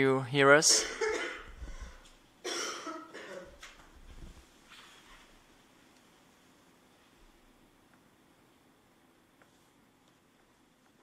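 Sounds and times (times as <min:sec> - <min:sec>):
person coughing: 0:00.7 - 0:03.6.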